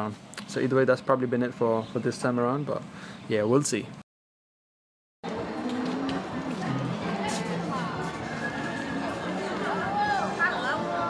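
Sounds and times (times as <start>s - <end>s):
people's voices: 5.3s - 11.0s.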